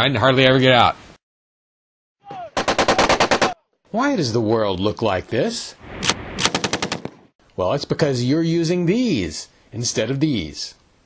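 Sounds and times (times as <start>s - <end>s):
machine gun firing: 2.6s - 3.6s, 6.4s - 7.2s.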